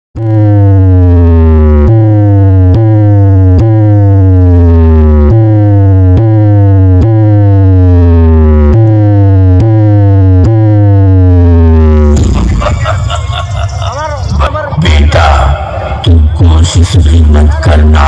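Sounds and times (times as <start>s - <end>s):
heavy deep bass note: 0.2s - 18.0s.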